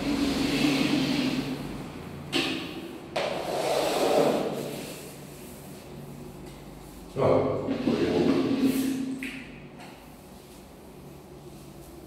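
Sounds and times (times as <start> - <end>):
brush swishing on wooden floor: 10.0 - 12.0.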